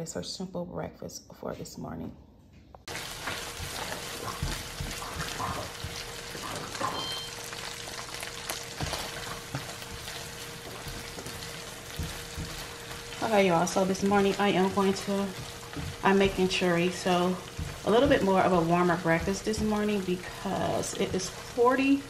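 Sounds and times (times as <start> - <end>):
spatula scraping pan: 2.9 - 21.9
meat and onion sizzling in pan: 2.9 - 22.0.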